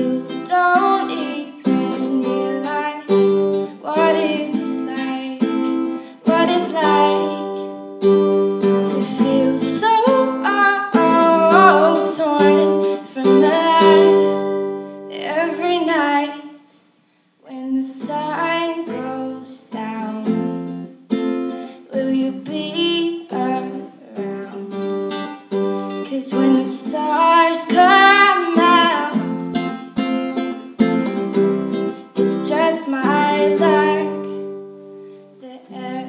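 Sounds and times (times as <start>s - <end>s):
woman singing: 0.0s - 7.9s, 8.6s - 16.7s, 17.4s - 20.8s, 21.7s - 25.0s, 26.0s - 29.6s, 32.0s - 34.6s, 35.4s - 36.0s
acoustic guitar: 0.0s - 36.0s.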